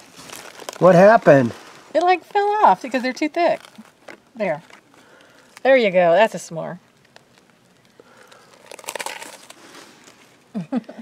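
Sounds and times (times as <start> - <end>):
crinkling and rustling: 0.0 - 6.0, 6.8 - 10.5.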